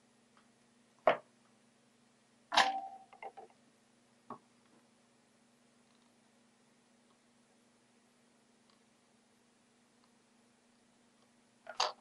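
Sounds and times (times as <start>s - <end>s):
brief metallic ring: 2.5s - 3.1s.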